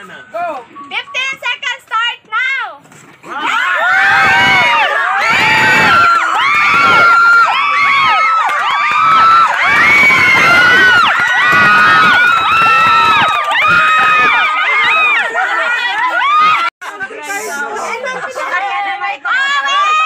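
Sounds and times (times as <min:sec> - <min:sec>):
children shrieking and shouting: 0:03.3 - 0:16.7, 0:17.6 - 0:20.0.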